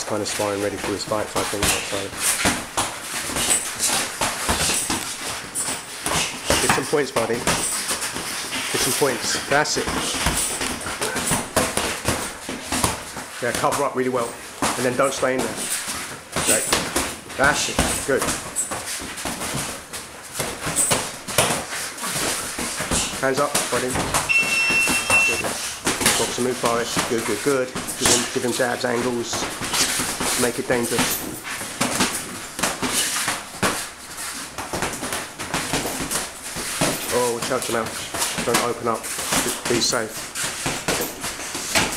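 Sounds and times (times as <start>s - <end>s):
feet shuffling and stamping: 0.1s - 41.9s
boxing gloves smacking: 1.4s - 9.0s, 9.8s - 13.9s, 14.6s - 28.3s, 29.4s - 41.9s
boxing gloves landing: 31.0s - 37.6s.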